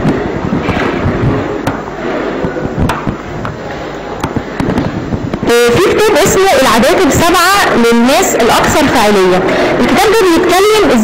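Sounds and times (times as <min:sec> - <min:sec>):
microphone handling noise: 0:00.0 - 0:06.0
woman speaking through microphone: 0:05.4 - 0:11.0.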